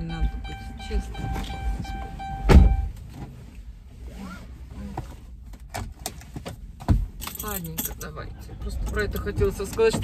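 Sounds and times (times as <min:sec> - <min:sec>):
car door shutting: 0:01.2 - 0:03.4.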